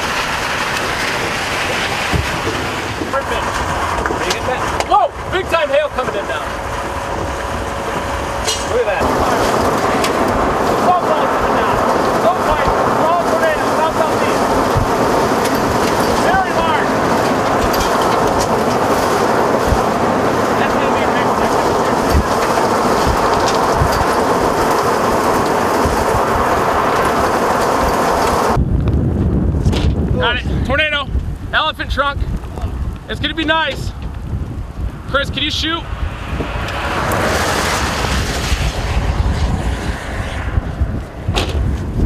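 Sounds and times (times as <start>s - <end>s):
strong storm wind rushing: 0.0s - 42.0s.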